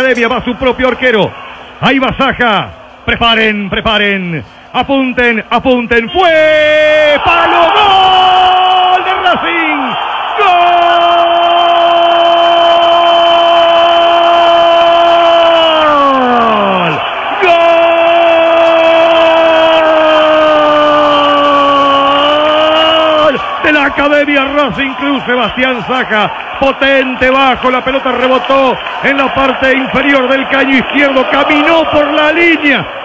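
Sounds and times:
stadium crowd: 0.0 - 33.0.

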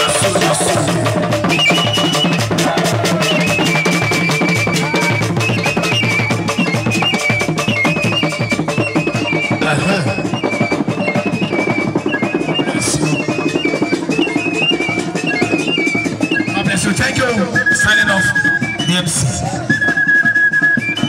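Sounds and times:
hand drums fast rhythm: 0.0 - 19.1
high melody: 0.0 - 21.0.

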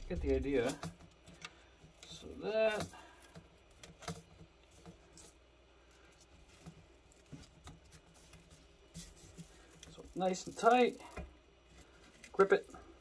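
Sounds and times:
plastic hoop clicks and rustles: 0.0 - 5.4, 6.2 - 13.0.

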